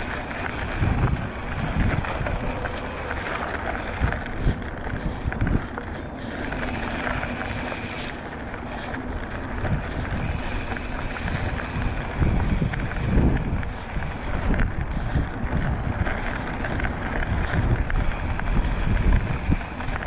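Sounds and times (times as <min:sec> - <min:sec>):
bike tyres hissing on dirt: 0:00.0 - 0:05.0, 0:06.2 - 0:09.0, 0:09.7 - 0:14.7, 0:17.8 - 0:20.0
wind buffeting microphone: 0:00.0 - 0:20.0.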